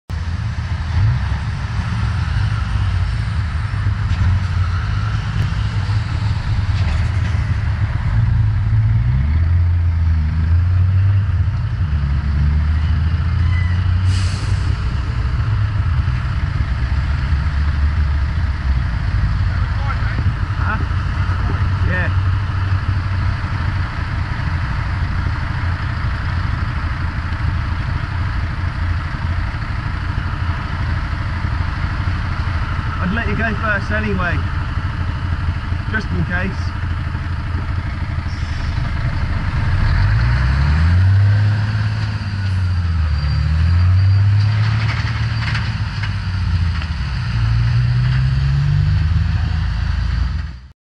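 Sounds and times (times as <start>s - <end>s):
lorry diesel engine rumbling: 0.1s - 50.7s.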